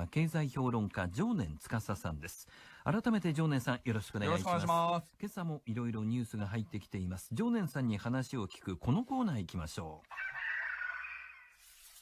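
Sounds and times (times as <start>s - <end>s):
rooster crowing: 10.1s - 11.6s.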